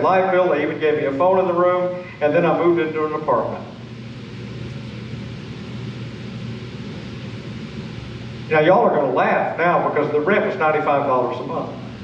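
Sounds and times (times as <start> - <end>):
low room hum and hiss: 0.0 - 12.0.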